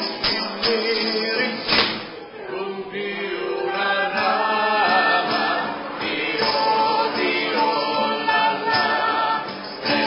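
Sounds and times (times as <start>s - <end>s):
folk trio singing together: 0.0s - 10.0s.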